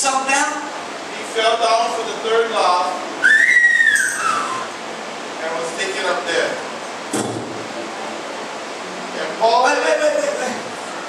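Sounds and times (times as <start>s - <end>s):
room noise hiss: 0.0s - 11.0s
short thump: 7.1s - 7.6s.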